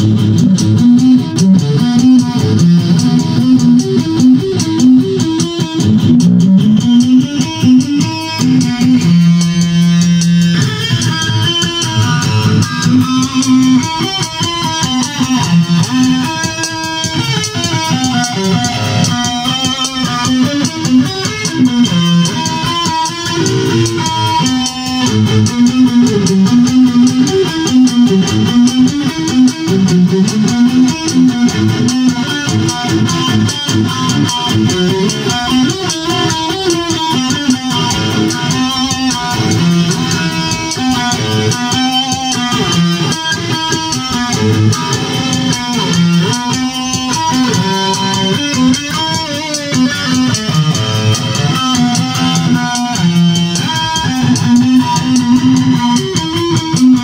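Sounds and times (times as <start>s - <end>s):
bass line: 0.0s - 13.8s
electric guitar melody: 0.0s - 57.0s.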